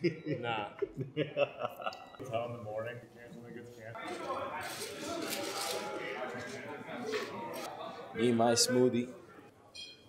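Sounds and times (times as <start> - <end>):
indistinct chatter: 2.1 - 10.0
dishes and utensils clinking: 9.7 - 10.0.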